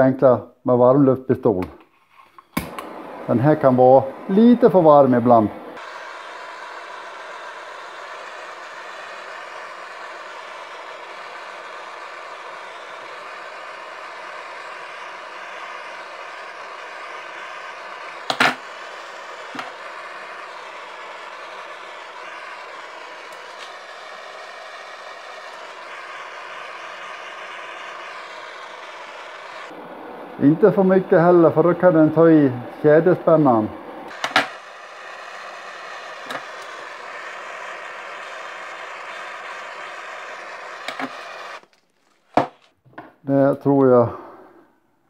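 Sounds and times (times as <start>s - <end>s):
gas torch hissing: 2.4s - 42.6s.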